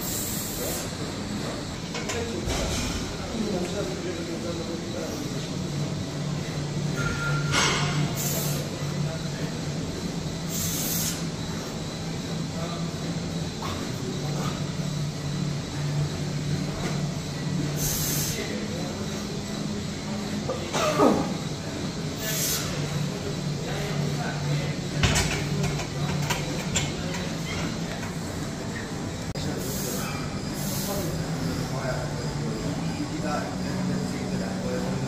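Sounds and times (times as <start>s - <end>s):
short hissing bursts: 0.0s - 1.0s, 8.1s - 8.7s, 10.5s - 11.3s, 17.7s - 18.5s, 22.2s - 22.8s, 29.6s - 31.1s.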